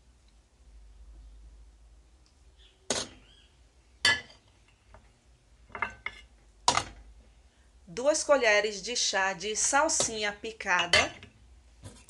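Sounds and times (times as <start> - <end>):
utensil clinking on metal pot: 4.1 - 4.4, 10.8 - 11.3.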